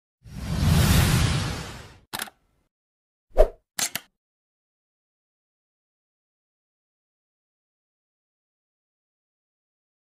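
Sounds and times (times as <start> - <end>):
quick clicks: 2.1 - 2.4, 3.8 - 4.1.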